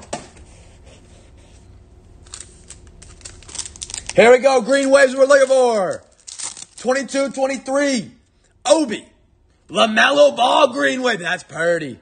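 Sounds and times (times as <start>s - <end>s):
pack peeled open crackling: 2.2s - 4.2s, 4.8s - 6.9s
foil wrapper crinkling: 2.2s - 7.2s.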